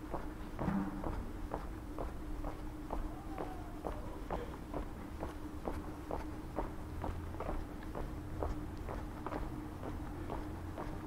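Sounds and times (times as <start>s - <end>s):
faint hum: 0.0s - 11.0s
footsteps on pavement: 0.0s - 11.0s.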